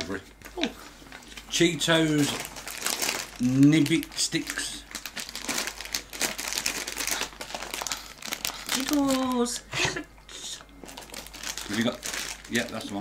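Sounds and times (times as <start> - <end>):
plastic crisp packet crinkling: 0.1 - 9.7, 10.4 - 13.0.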